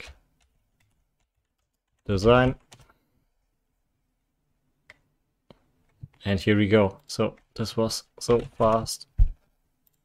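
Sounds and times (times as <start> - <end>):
faint computer keyboard typing: 0.3 - 3.0, 9.8 - 10.0.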